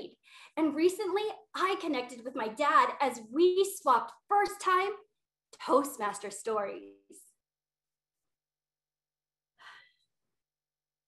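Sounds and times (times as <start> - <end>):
woman breathing: 0.2 - 0.6, 9.6 - 10.2.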